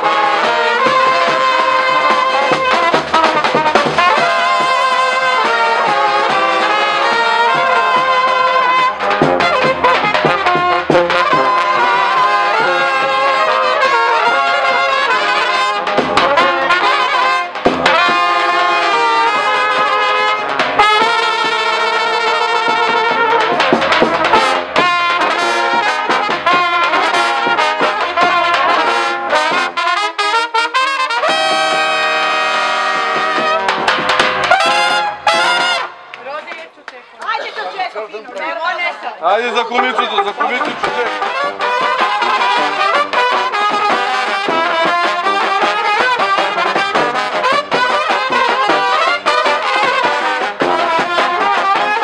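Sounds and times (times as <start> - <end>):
drum: 0.0 - 30.0, 31.2 - 35.9, 39.5 - 52.0
brass band playing: 0.0 - 52.0
voices: 0.4 - 18.2, 35.2 - 43.2.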